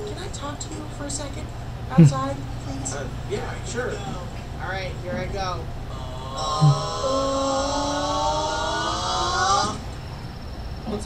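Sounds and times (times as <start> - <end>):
long tone rising in pitch: 6.3 - 9.5.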